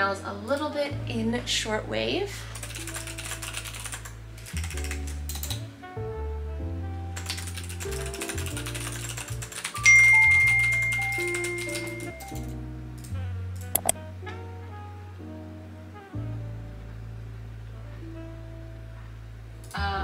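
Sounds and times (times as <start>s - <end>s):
typing on computer keyboard: 2.6s - 5.6s, 7.2s - 12.5s, 13.8s - 14.0s
bright chime: 9.8s - 12.2s.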